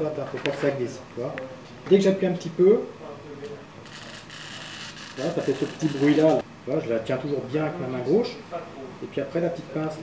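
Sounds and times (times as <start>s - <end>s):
glass cutter scoring glass: 3.9s - 6.4s.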